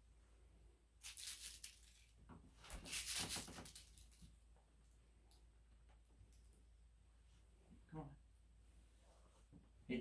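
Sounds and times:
crinkle ball toy crinkling: 1.0 - 4.3.

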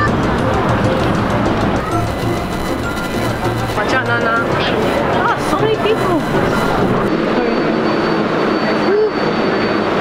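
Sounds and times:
faint high whine: 1.9 - 8.9.

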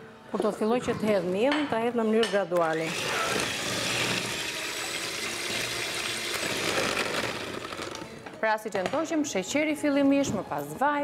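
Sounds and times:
electric hand mixer whisking batter: 2.8 - 8.0.

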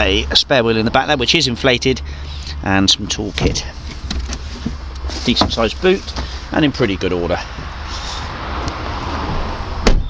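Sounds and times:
rustling: 3.6 - 6.5
car tailgate slamming shut: 9.8 - 10.0.

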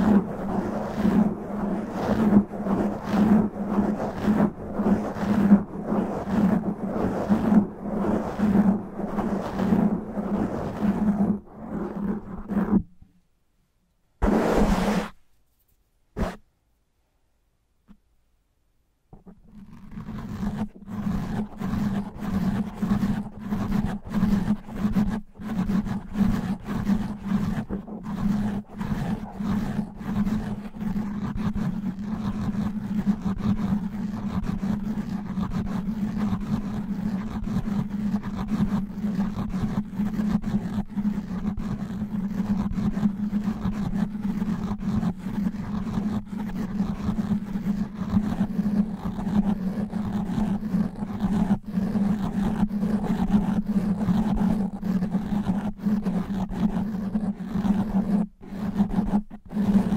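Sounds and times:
fingernails scratching foam windscreen: 0.0 - 13.0, 14.2 - 15.2, 16.2 - 16.4, 19.2 - 59.9.

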